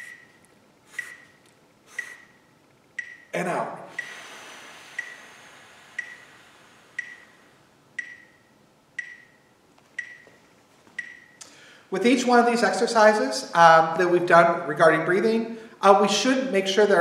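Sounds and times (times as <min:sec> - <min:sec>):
metronome ticking with high beep: 0:00.0 - 0:04.2, 0:04.9 - 0:05.3, 0:05.9 - 0:06.4, 0:07.0 - 0:07.4, 0:08.0 - 0:10.4, 0:11.0 - 0:11.4
long exhaled breath: 0:04.0 - 0:07.6.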